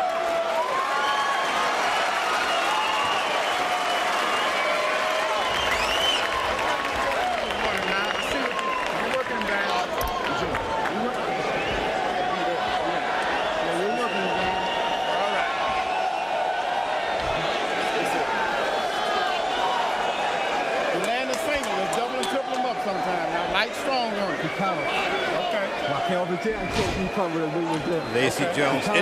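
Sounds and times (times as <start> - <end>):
crowd voices talking: 4.6 - 29.0.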